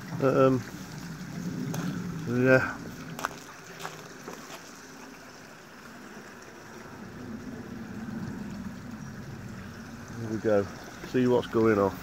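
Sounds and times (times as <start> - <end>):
heavy rain hissing: 0.0 - 4.5
low rumble: 0.6 - 3.4, 6.9 - 10.9.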